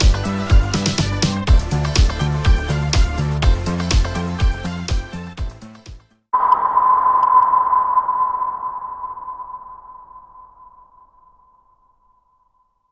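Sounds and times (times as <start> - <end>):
music: 0.0 - 6.3
steady electronic tone: 6.4 - 11.8.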